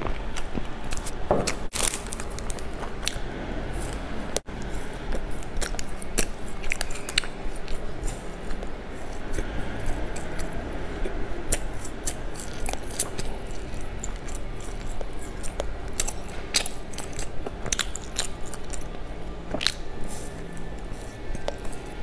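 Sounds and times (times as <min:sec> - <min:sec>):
chewing snack: 0:00.0 - 0:22.0.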